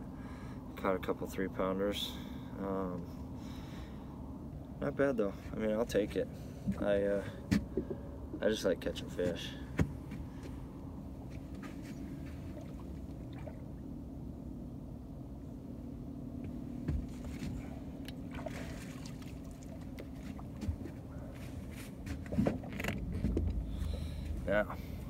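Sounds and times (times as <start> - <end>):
boat motor humming: 1.4 - 25.0
knocks and scuffs on boat: 5.9 - 8.4, 9.1 - 13.6, 16.4 - 24.5.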